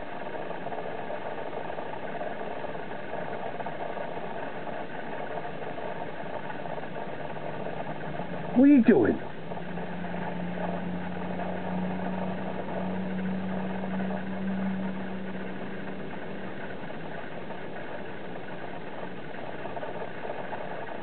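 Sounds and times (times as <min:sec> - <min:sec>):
mechanical hum: 0:04.2 - 0:21.0.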